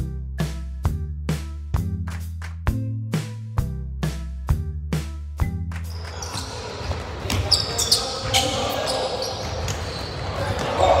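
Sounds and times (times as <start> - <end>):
music beat: 0.0 - 6.2
sneaker squeaks on hardwood: 5.9 - 10.9
players' voices: 5.9 - 11.0.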